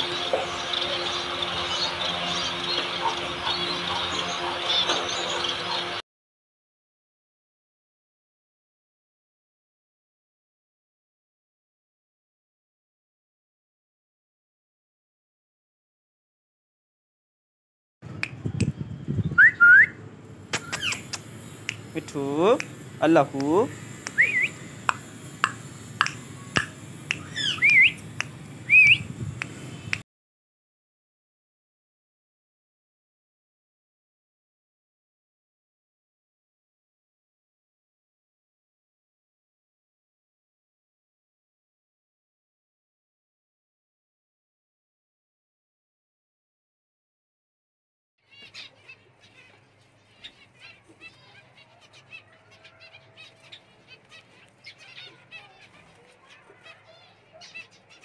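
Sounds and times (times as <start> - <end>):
finches chirping: 0.0 - 6.0, 20.6 - 30.0, 48.3 - 58.0
cockatoo wavering whistles: 19.4 - 20.0, 24.0 - 24.6, 26.0 - 28.0, 28.7 - 29.1
sharp clicks: 20.5 - 22.8, 23.4 - 28.4.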